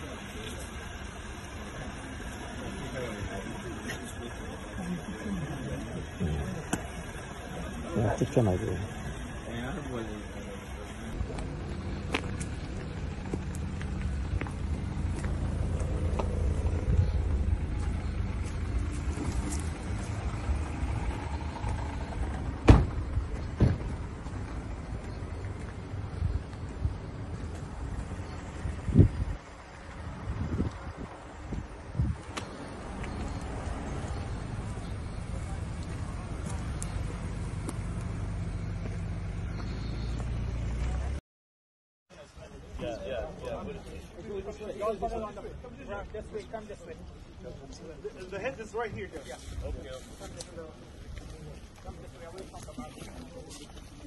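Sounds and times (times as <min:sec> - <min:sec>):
car engines rumbling: 0:00.0 - 0:41.2, 0:42.4 - 0:54.0.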